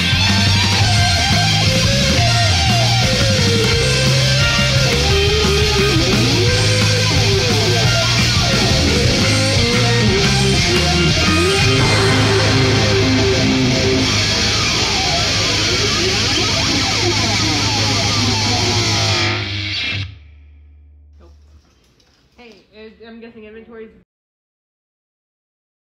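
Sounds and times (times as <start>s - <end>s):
drums: 0.0s - 20.0s
distorted electric guitars: 0.0s - 20.5s
bass guitar: 0.0s - 21.1s.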